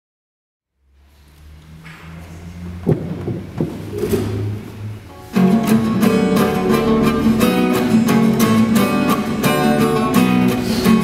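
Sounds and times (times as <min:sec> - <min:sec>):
guitar note ringing through speakers: 0:05.1 - 0:11.0.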